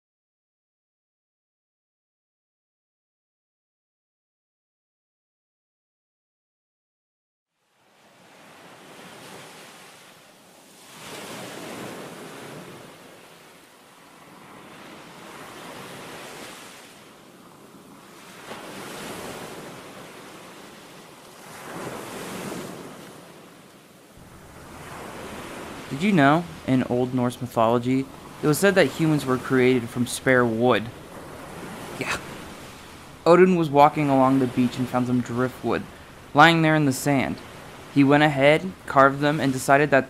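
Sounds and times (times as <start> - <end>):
rushing noise in waves: 7.6 - 40.0.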